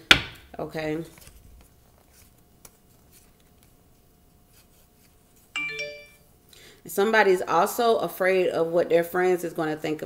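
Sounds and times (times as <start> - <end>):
short electronic chime: 5.6 - 6.2.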